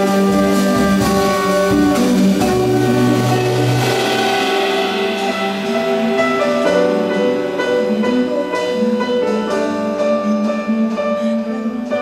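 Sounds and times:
jazz ensemble playing chords: 0:00.0 - 0:10.3.

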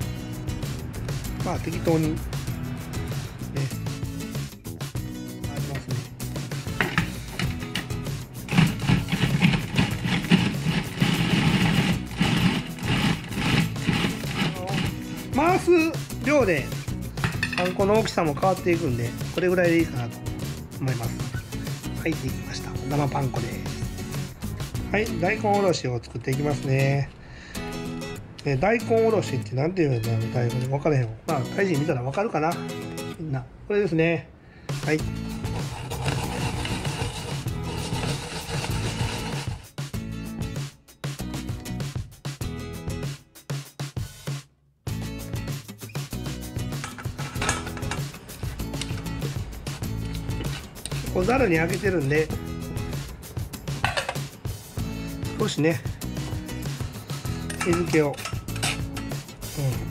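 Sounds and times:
background music: 0:00.0 - 0:59.9
radish grated on metal grater: 0:07.7 - 0:15.0, 0:35.3 - 0:39.7
food processor chopping bread: 0:08.5 - 0:15.0, 0:35.5 - 0:39.7.

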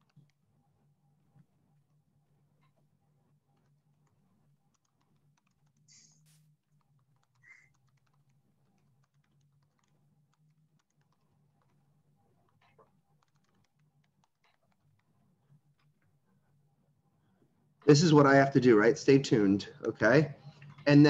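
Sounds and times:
low steady hum: 0:00.0 - 0:21.0
computer keyboard typing: 0:03.6 - 0:15.2.

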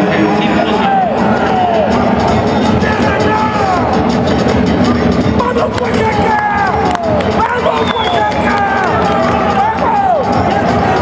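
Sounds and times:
music playing: 0:00.0 - 0:11.0
audience members shouting: 0:05.6 - 0:11.0.

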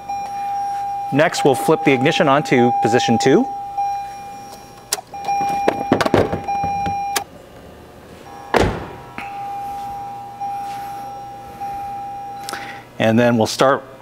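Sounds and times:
car warning tone: 0:00.0 - 0:07.4, 0:08.2 - 0:13.0
heavy thunk: 0:08.5 - 0:09.3.

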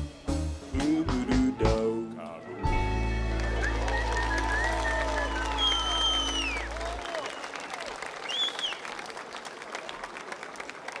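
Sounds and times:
concert audience applauding: 0:02.9 - 0:11.0
high call over clapping: 0:03.3 - 0:11.0.

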